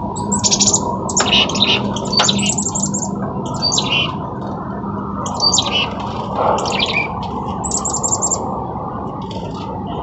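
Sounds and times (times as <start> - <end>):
small songbirds chirping: 0.1 - 4.2, 5.2 - 8.5.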